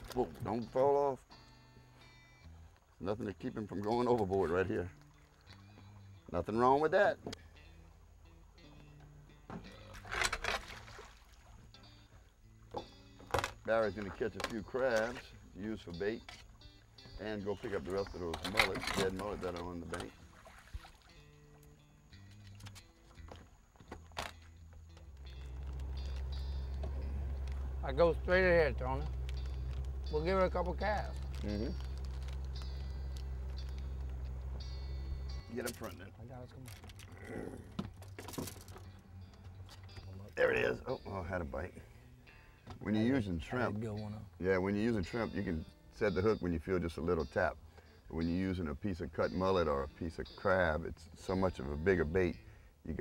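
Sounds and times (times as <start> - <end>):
boat motor humming: 0.0 - 46.3
faint background music: 0.0 - 53.0
splash in water: 9.8 - 11.6, 20.3 - 21.2.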